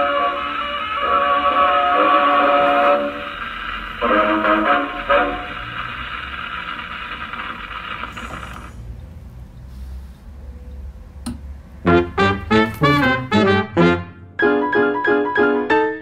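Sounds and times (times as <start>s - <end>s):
gramophone playing orchestral record: 0.0s - 8.7s, 11.6s - 14.4s.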